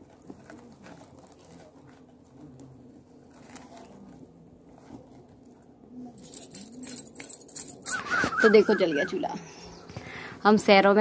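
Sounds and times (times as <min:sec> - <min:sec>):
dry straw rustling and crackling: 0:00.0 - 0:05.5.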